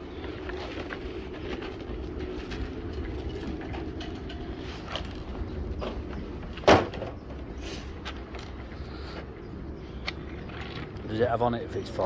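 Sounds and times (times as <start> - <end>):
engine running low rumble: 0.0 - 12.0.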